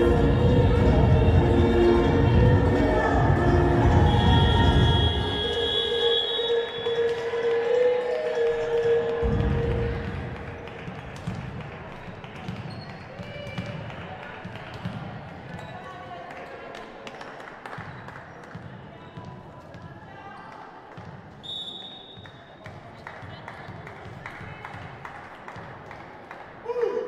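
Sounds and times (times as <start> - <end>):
music over sound system: 0.0 - 10.7
volleyball bouncing on wooden floor: 10.8 - 15.7.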